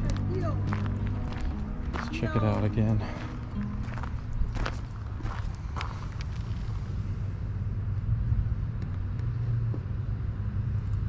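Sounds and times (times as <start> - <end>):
footsteps crunching on gravel: 0.0 - 7.0
vehicle engine hum: 0.0 - 11.0.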